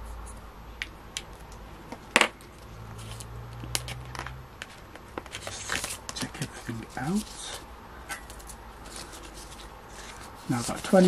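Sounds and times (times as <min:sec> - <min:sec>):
low steady hum: 0:00.0 - 0:11.0
banknotes rustling: 0:02.5 - 0:11.0.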